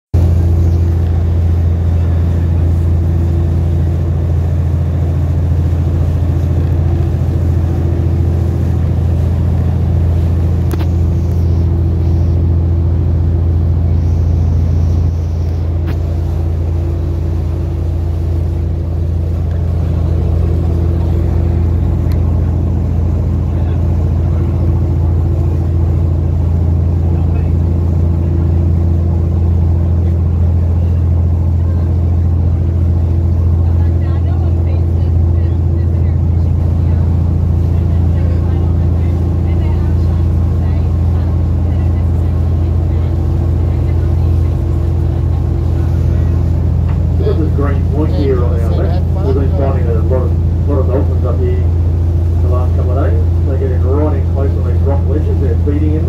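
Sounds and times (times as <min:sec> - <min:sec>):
boat engine running: 0:00.1 - 0:56.0.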